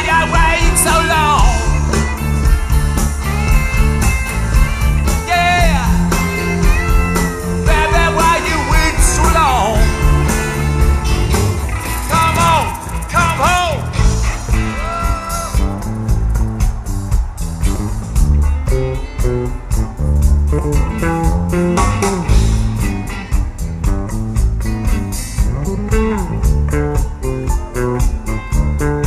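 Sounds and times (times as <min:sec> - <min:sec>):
bass: 0:00.0 - 0:29.0
drums and cymbal beat: 0:00.0 - 0:29.0
electric guitars riffing: 0:00.0 - 0:29.0.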